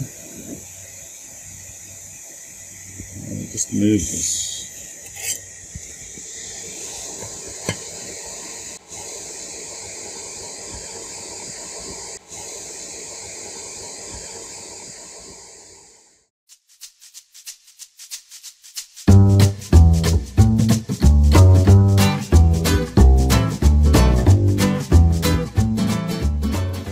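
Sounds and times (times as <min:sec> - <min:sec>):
background hiss: 0:00.0 - 0:26.9.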